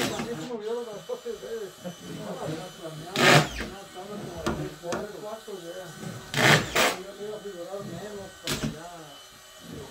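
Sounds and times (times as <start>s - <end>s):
quiet talk among workers: 0.0s - 9.9s.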